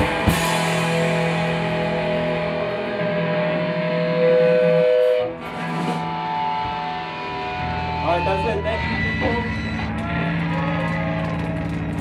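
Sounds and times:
amplified electric guitars ringing: 0:00.0 - 0:12.0.

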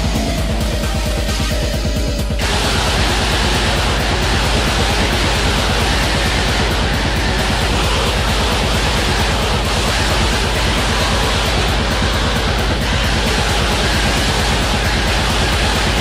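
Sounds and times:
distorted guitars: 0:00.0 - 0:16.0
very fast drumming: 0:00.0 - 0:16.0.

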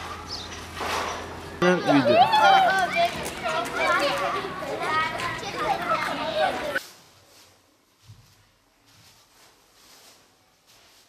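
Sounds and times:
children talking at once: 0:01.6 - 0:06.8.

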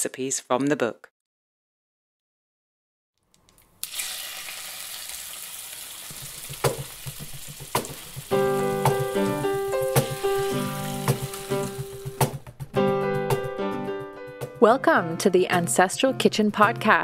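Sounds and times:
food sizzling in a pan: 0:03.8 - 0:12.2
sharp knocks: 0:06.4 - 0:09.2, 0:09.9 - 0:10.3, 0:12.0 - 0:12.5.

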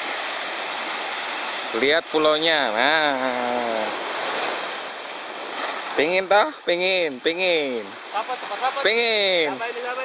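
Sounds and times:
waves washing onto beach: 0:00.0 - 0:10.0.

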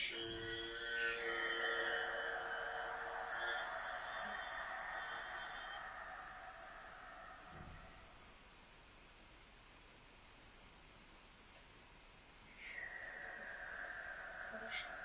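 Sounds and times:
brighter higher ring: 0:00.2 - 0:08.3.

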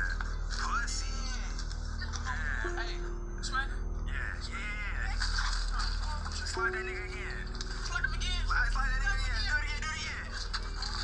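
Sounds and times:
background music with bass pulse: 0:00.0 - 0:11.0.

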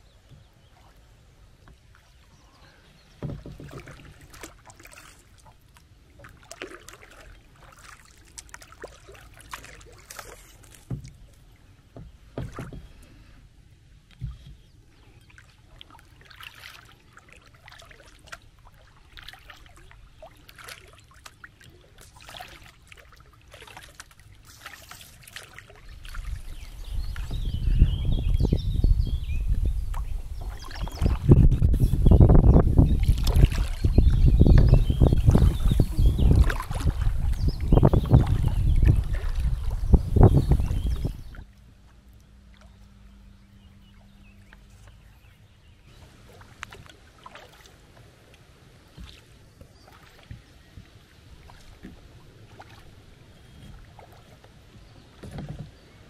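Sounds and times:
kayak paddle splashing: 0:00.1 - 0:56.0.

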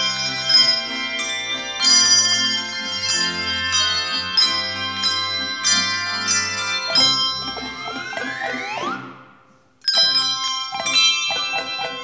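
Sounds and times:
handbell choir ringing: 0:00.0 - 0:08.6, 0:09.8 - 0:12.0.

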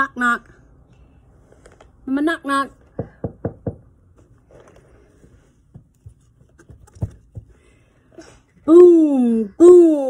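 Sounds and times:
knocking on hard surface: 0:02.9 - 0:03.9.

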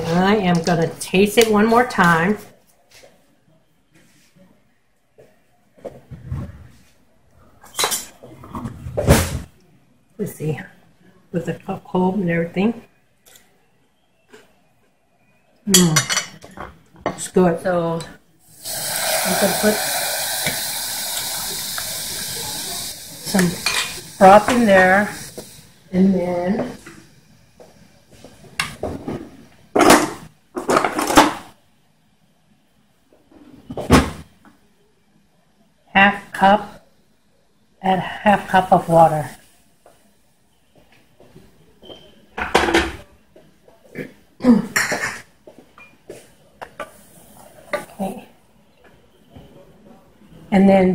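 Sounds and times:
utensils clattering: 0:23.3 - 0:25.5.

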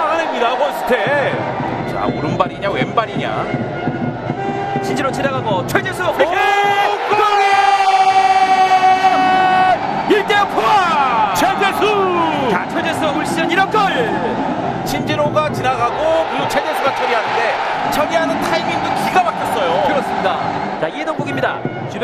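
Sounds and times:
excited commentary: 0:00.0 - 0:03.5, 0:04.8 - 0:22.0
stadium crowd cheering: 0:00.0 - 0:22.0
commentator shouting: 0:04.5 - 0:14.4.

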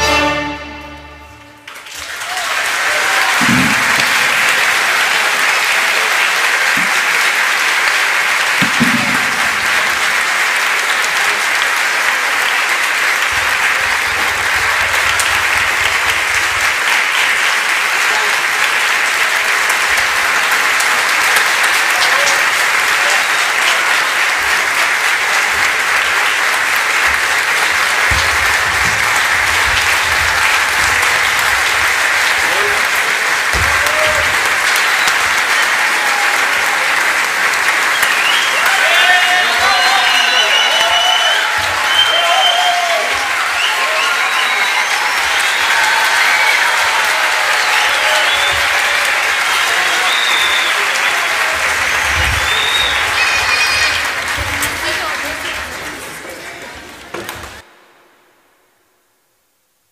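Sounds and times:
audience applause: 0:00.0 - 0:57.8.

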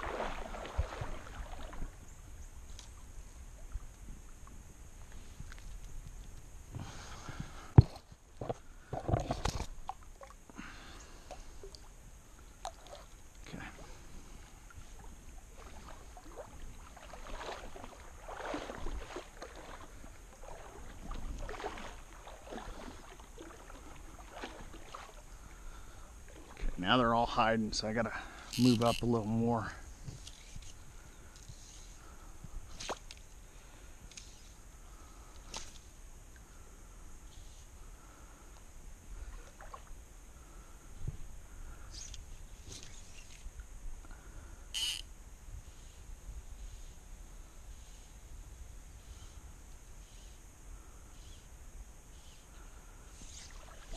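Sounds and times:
water sloshing and splashing: 0:00.0 - 0:03.8, 0:07.3 - 0:26.8, 0:39.2 - 0:40.0, 0:53.2 - 0:53.9.

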